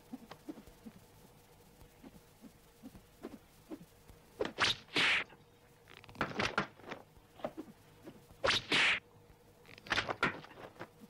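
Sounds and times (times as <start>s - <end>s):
rope whip swishing: 2.9s - 5.3s, 7.4s - 9.0s.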